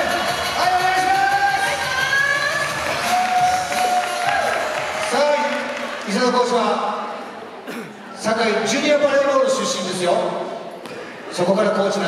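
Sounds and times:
music over sound system: 0.0 - 5.0
crowd cheering: 0.0 - 6.8.

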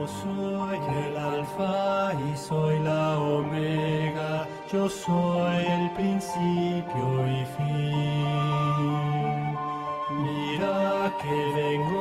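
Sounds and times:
person singing slow devotional song: 0.0 - 12.0.

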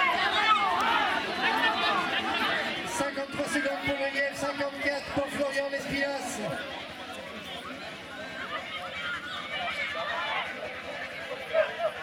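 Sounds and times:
indistinct voices of spectators: 0.0 - 12.0.

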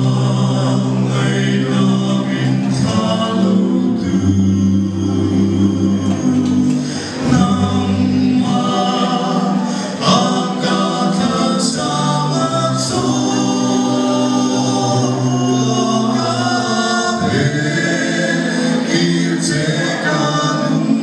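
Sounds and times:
male vocal quartet singing: 0.0 - 21.0.

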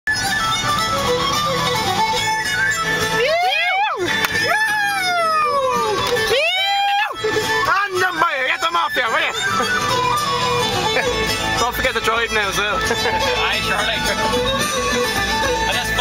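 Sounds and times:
music playing in a car: 0.1 - 16.0
man wailing: 3.2 - 7.4.

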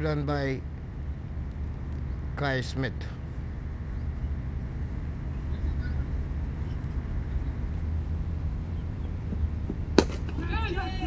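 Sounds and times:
low outdoor rumble: 0.0 - 11.0
faint distant voices: 5.0 - 11.0.

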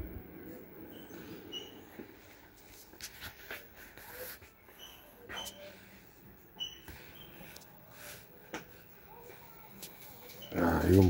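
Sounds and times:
faint shuffling: 0.0 - 11.0.

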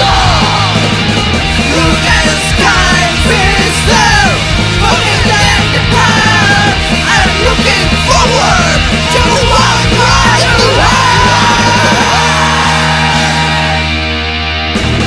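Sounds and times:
pop punk band playing: 0.0 - 15.0.

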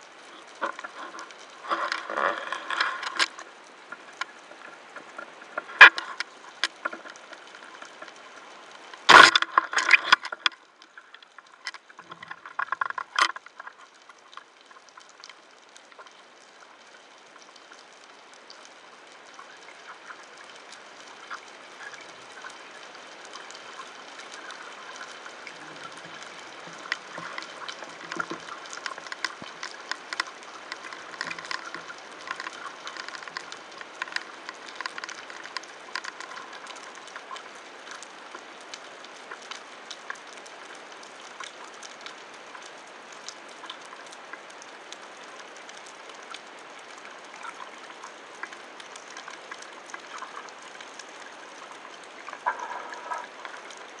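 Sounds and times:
underwater hiss with crackling clicks: 0.0 - 54.0
water gurgling: 0.0 - 54.0.

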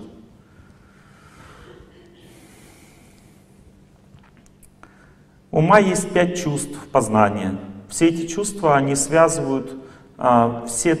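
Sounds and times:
low room hum: 0.0 - 11.0
man drawing soft breath: 0.5 - 3.6.

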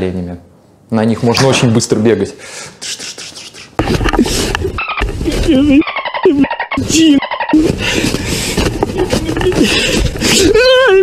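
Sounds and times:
voice making warbling sounds: 2.8 - 7.9.

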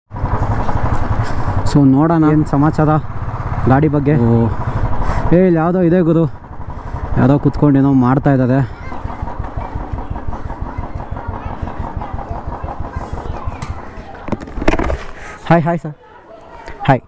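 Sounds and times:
motorcycle engine running: 0.1 - 15.4.

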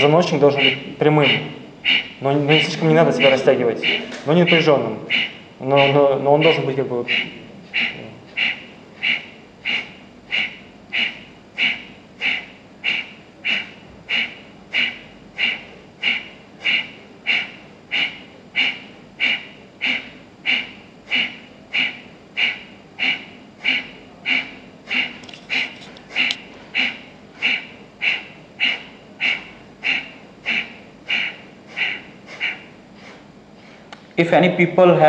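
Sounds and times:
forceful breath puffs through nose: 0.6 - 33.9.

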